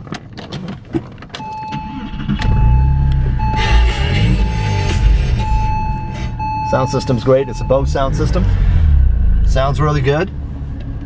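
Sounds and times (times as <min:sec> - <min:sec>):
car engine starting and idling: 0:00.0 - 0:11.0
warning chime beeping: 0:01.4 - 0:08.4.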